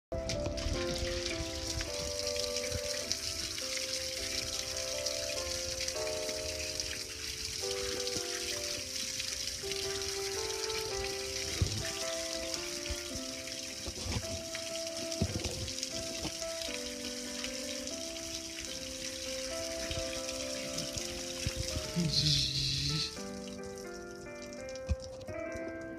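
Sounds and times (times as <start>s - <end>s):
hose water spraying on metal grill: 0.2s - 25.3s.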